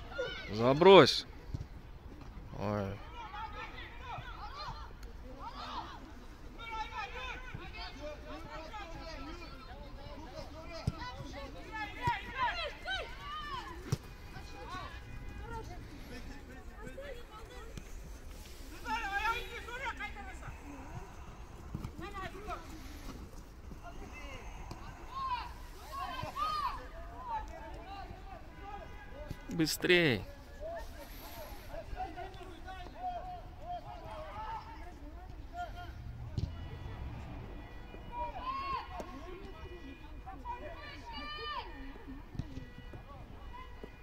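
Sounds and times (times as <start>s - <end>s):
distant voices shouting: 18.4s - 29.2s.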